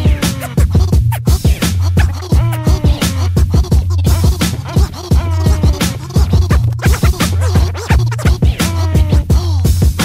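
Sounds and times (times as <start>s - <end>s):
hip-hop beat with deep bass: 0.0s - 10.0s
turntable scratching: 0.0s - 10.0s.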